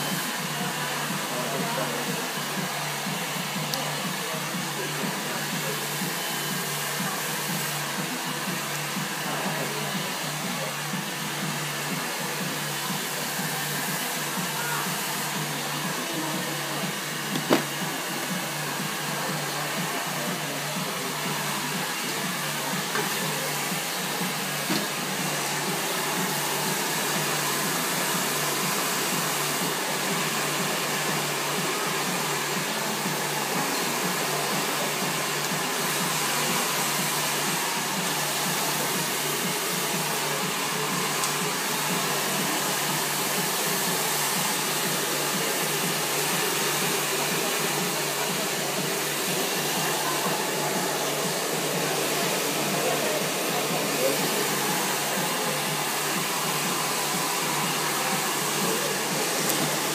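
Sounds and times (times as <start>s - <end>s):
hair dryer running: 0.0s - 59.9s.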